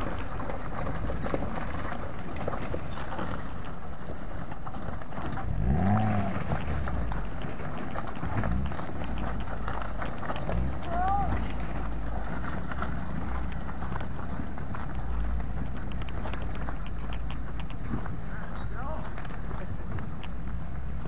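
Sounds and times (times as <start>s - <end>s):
rocks clattering under tyres: 0.0s - 21.0s
vehicle engine running and revving: 5.1s - 18.9s.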